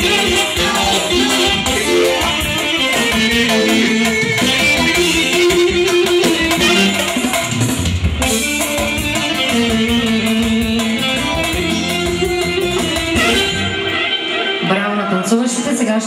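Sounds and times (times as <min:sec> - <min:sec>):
loud dance music: 0:00.0 - 0:05.2.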